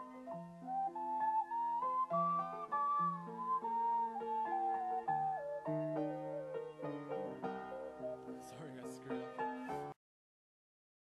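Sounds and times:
ocarina melody: 0:00.0 - 0:09.9
piano chords: 0:00.0 - 0:10.0.

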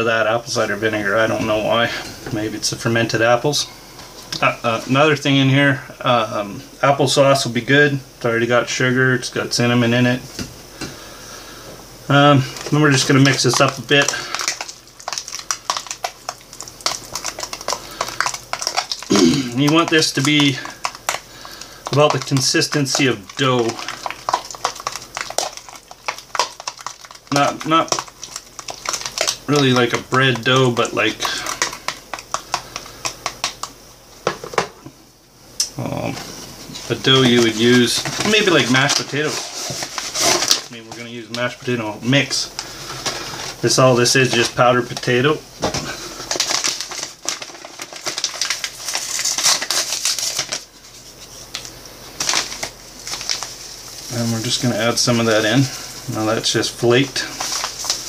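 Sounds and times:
packet crinkling and rustling: 0:12.1 - 0:34.7, 0:36.1 - 0:58.0
spoon mashing wet fruit: 0:12.6 - 0:34.6.

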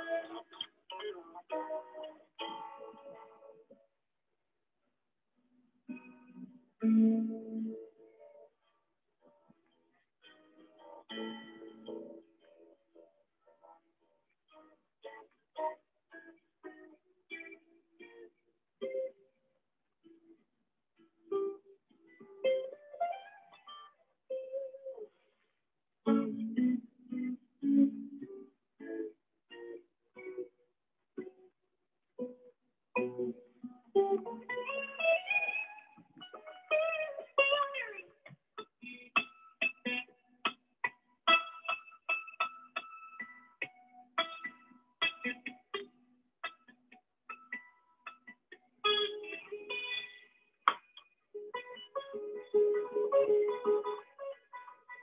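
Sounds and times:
electric guitar lead: 0:00.0 - 0:03.8, 0:05.9 - 0:08.5, 0:10.2 - 0:13.0, 0:14.5 - 0:19.3, 0:21.2 - 0:25.2, 0:26.1 - 0:30.5, 0:32.2 - 0:55.0.

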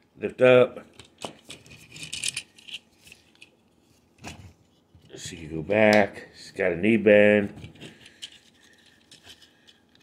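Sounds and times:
faint handling of toy: 0:00.9 - 0:05.6, 0:07.5 - 0:10.0.

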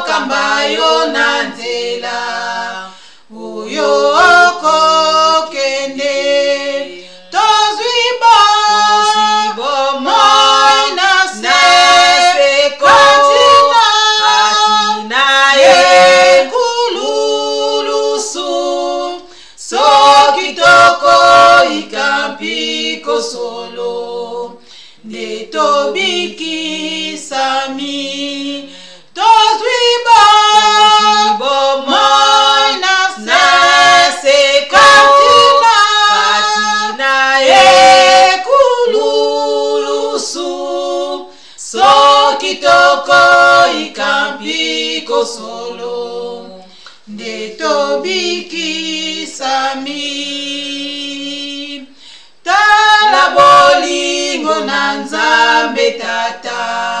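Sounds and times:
women singing gospel unaccompanied: 0:00.0 - 0:57.0.

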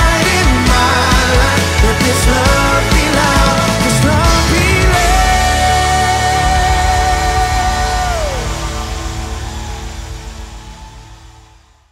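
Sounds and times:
worship band closing chord: 0:00.0 - 0:11.7.

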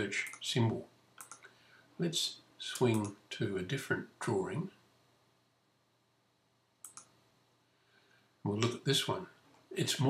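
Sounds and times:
computer mouse clicks: 0:00.2 - 0:00.5, 0:01.2 - 0:01.5, 0:02.7 - 0:03.2, 0:06.8 - 0:07.2.

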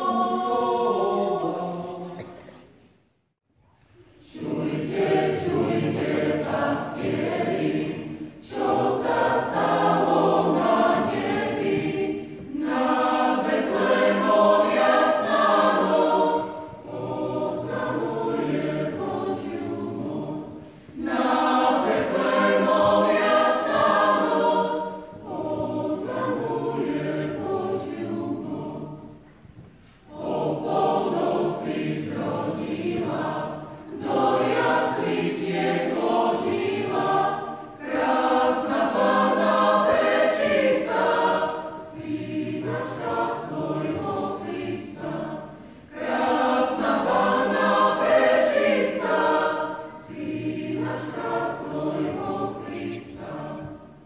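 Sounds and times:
mixed choir singing: 0:00.0 - 0:02.7, 0:04.2 - 0:54.0.

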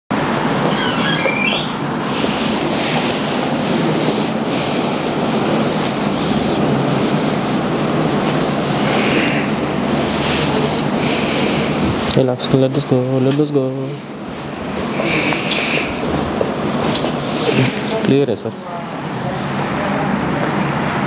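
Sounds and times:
loud rushing noise: 0:01.8 - 0:21.0.

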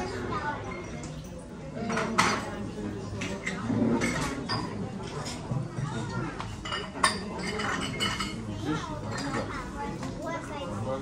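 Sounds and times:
people talking in background: 0:00.0 - 0:11.0
tableware clinking: 0:00.6 - 0:05.5, 0:06.4 - 0:09.5.

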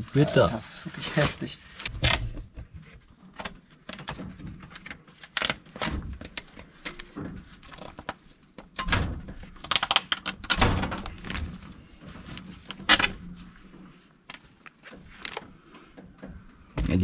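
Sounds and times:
metal scraping and clinking: 0:00.0 - 0:01.5.

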